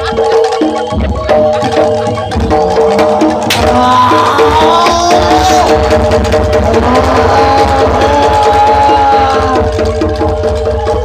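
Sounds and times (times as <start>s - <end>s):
fast low drum beat: 0.0s - 11.0s
gong and metallophone tones: 0.0s - 11.0s.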